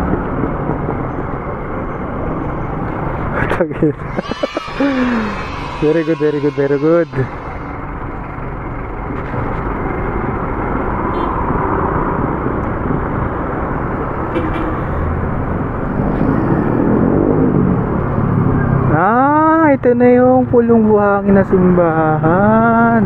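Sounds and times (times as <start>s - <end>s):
traffic rushing noise: 0.0s - 23.0s.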